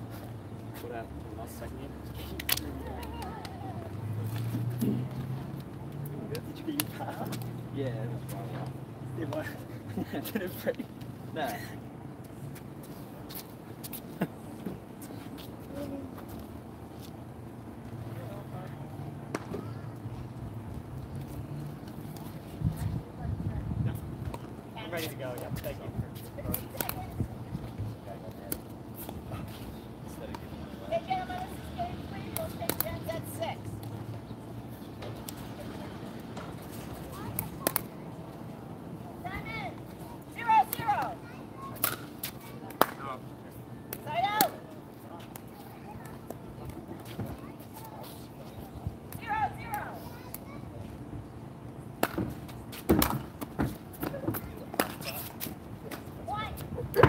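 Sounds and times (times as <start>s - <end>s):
voices talking: 0.2s - 57.0s.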